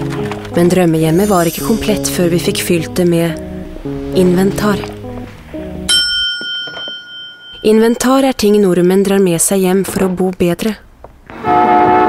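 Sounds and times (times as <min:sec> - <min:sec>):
light instrumental music: 0:00.0 - 0:08.9
bright bell ding: 0:05.9 - 0:08.4.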